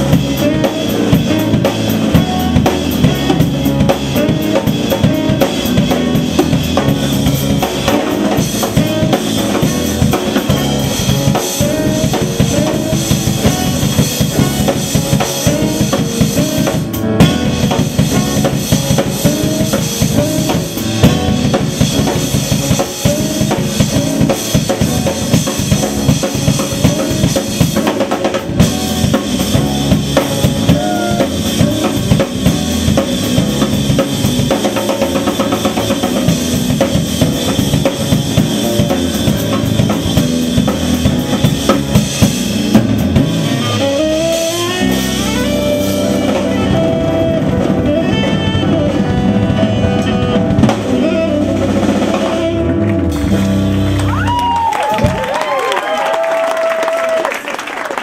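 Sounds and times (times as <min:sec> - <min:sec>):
walking electric bass line: 0:00.0 - 0:55.4
jazz drum kit: 0:00.0 - 0:58.0.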